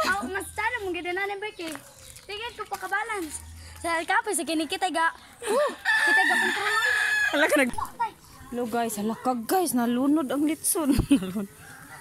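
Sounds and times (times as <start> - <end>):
rooster crowing: 5.8 - 7.6, 11.6 - 12.0.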